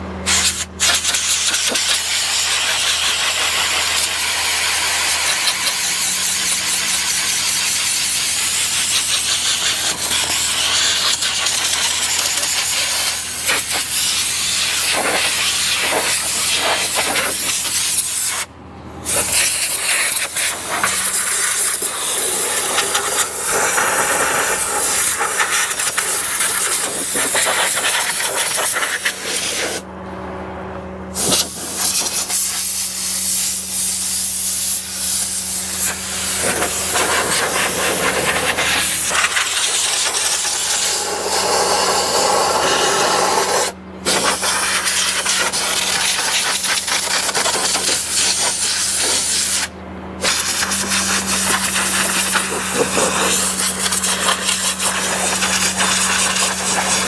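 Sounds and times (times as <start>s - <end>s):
compressed air hissing: 0.3s - 29.8s, 31.1s - 57.0s.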